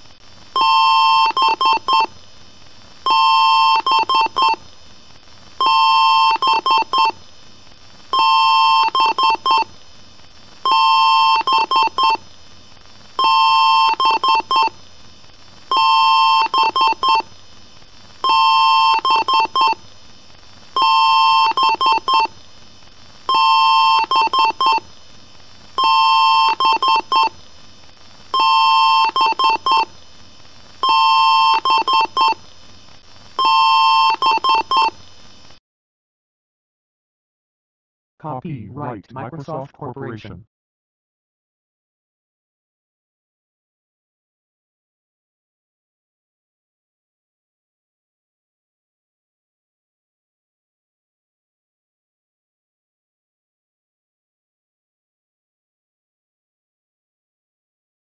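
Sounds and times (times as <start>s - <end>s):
computer speaker beeping: 38.2s - 40.4s.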